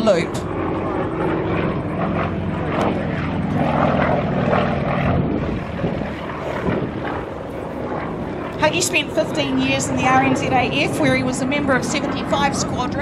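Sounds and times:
propeller plane engine drone: 0:00.0 - 0:13.0.

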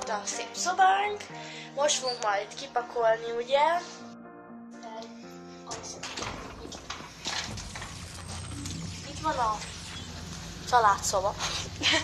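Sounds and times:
door being pushed open: 0:05.8 - 0:09.8.

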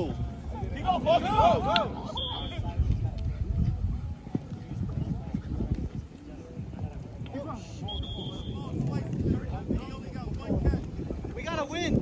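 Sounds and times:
faint shouting voices: 0:00.0 - 0:12.0.

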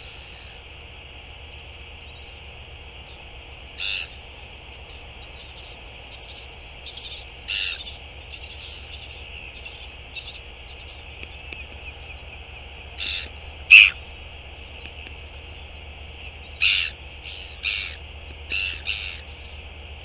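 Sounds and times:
steady high-pitched hiss: 0:00.0 - 0:20.0
short bird calls: 0:03.8 - 0:19.6.

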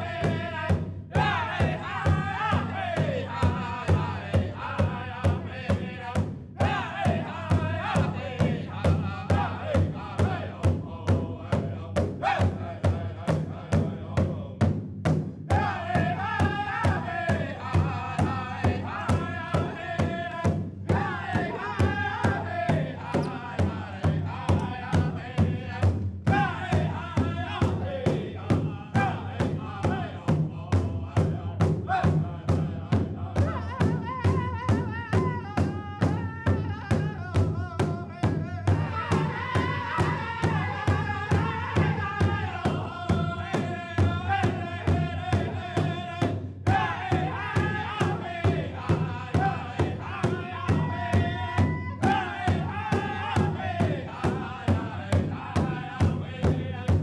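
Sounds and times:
steady drumbeat: 0:00.0 - 0:57.0
voices in high wavering chant: 0:12.2 - 0:12.6, 0:49.2 - 0:53.9.

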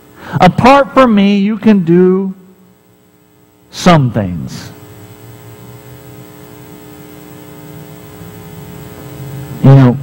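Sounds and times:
electrical mains hum: 0:00.0 - 0:10.0
man speaking: 0:03.7 - 0:04.8, 0:09.6 - 0:10.0.

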